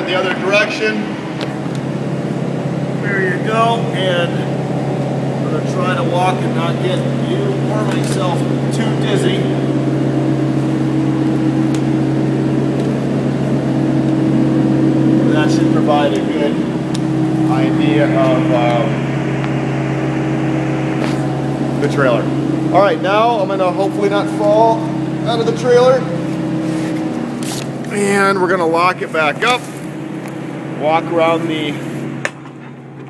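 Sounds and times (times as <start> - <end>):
refrigeration unit droning hum: 0.0 - 33.0.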